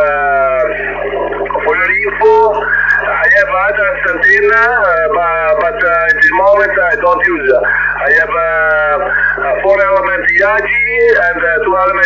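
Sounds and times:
man's voice over radio speaker: 0.0s - 12.0s
steady low hum: 0.0s - 12.0s.

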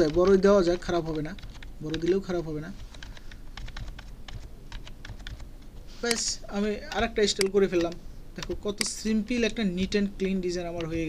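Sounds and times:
computer keyboard typing: 0.0s - 11.0s.

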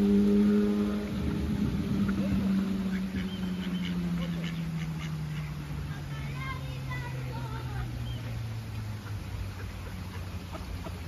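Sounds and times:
engine humming: 0.0s - 11.0s
ducks quacking: 2.0s - 6.5s, 9.0s - 11.0s.

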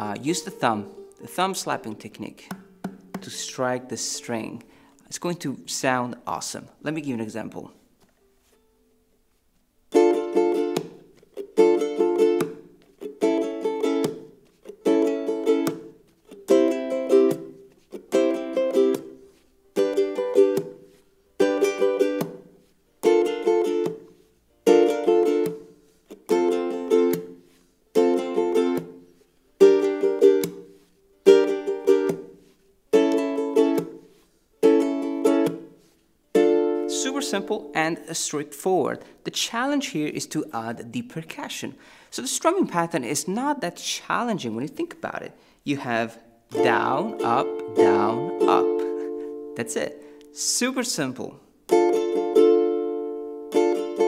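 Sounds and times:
ukulele strumming: 0.0s - 5.6s, 6.9s - 54.0s
thumb slap on strings: 2.4s - 3.4s, 10.6s - 11.5s, 12.3s - 12.8s, 14.0s - 14.4s, 15.6s - 16.0s, 20.4s - 20.9s, 22.1s - 24.2s, 25.3s - 27.4s, 28.6s - 29.0s, 30.2s - 30.8s, 31.9s - 32.4s, 33.0s - 34.1s, 35.3s - 35.8s.

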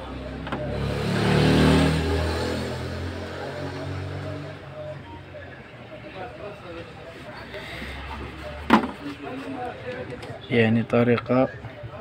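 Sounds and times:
vehicle engine passing: 0.0s - 4.7s.

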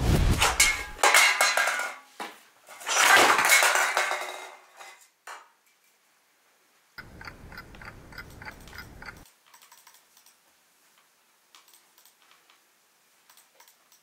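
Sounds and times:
clock ticking fast: 7.0s - 9.2s.

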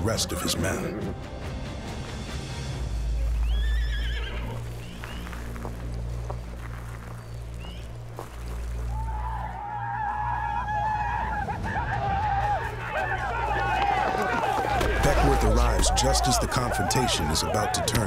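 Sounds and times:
horse whinnying: 3.6s - 4.7s.

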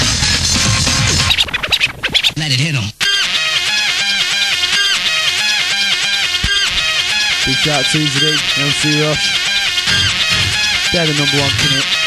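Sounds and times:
record scratching: 0.0s - 12.0s
repeating melodic riff: 3.0s - 12.0s
rave dance music: 3.2s - 12.0s.

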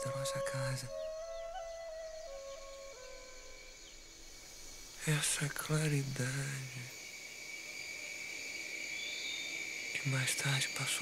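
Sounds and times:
soft film score music: 0.0s - 4.2s.

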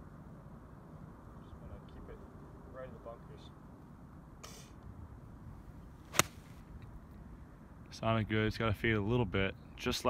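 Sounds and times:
golf club hitting ball: 6.1s - 6.6s.

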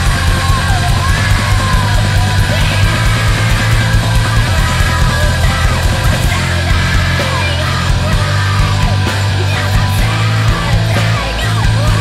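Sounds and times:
distorted guitars and bass: 0.0s - 12.0s
fast drumming: 0.0s - 12.0s
yelled vocal: 0.0s - 12.0s.

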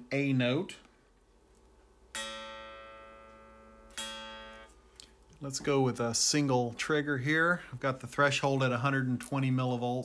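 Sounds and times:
electric guitar notes plucked: 2.1s - 4.8s.

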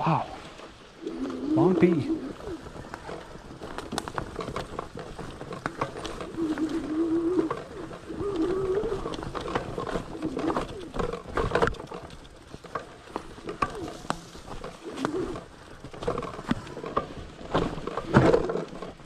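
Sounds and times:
bike rattling over rough trail: 0.0s - 19.0s.

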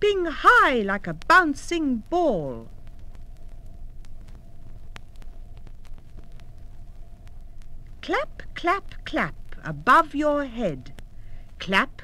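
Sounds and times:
vinyl record rumble and hum: 0.0s - 12.0s
vinyl clicks and crackles: 1.0s - 9.6s.

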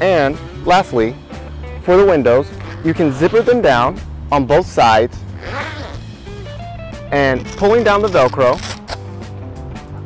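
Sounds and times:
zipper pulled open: 2.5s - 3.7s, 5.3s - 6.5s, 7.3s - 9.1s
guitar music: 5.2s - 9.6s.

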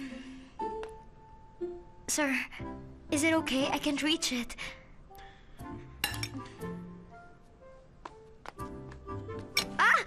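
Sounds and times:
soft background music: 0.0s - 10.0s
tableware clinking: 6.0s - 6.5s.

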